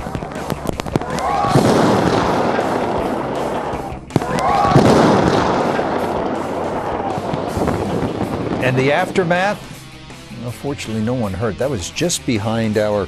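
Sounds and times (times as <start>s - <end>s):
lightning crack: 0.0s - 10.0s
rolling thunder rumble: 1.2s - 9.8s.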